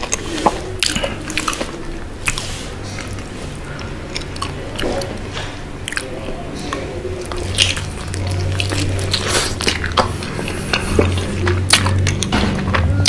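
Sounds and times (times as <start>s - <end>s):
chewing crunchy chicken: 0.0s - 13.0s.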